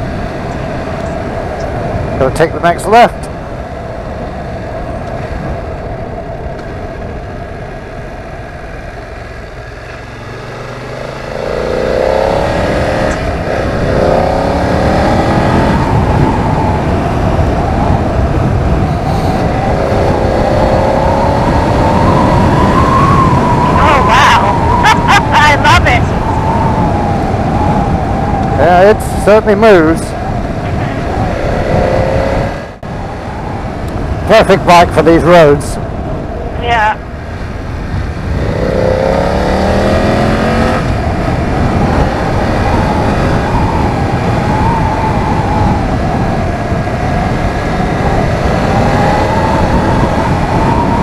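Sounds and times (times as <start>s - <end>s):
motorcycle engine accelerating: 0.0s - 36.4s, 37.0s - 51.0s
road and wind noise: 0.0s - 51.0s.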